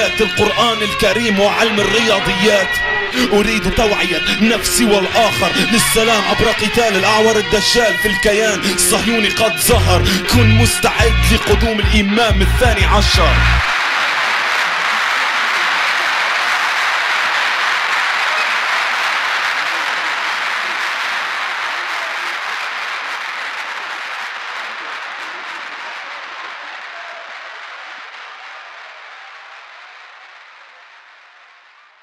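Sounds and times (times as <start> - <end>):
crowd applause: 0.0 - 32.0.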